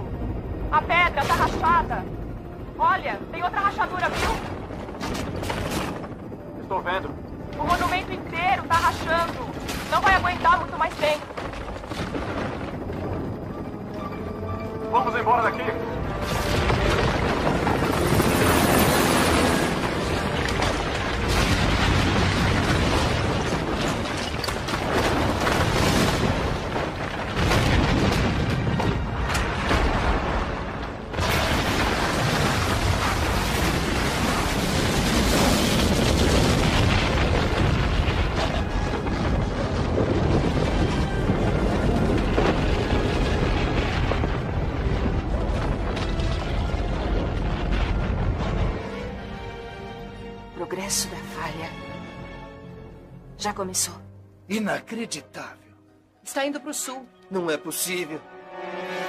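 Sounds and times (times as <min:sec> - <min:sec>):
dramatic music: 0:00.0 - 0:59.0
loud rumble with booms: 0:03.1 - 0:13.9, 0:16.0 - 0:49.4
rock cracking and collapsing: 0:08.7 - 0:13.2, 0:16.2 - 0:49.0.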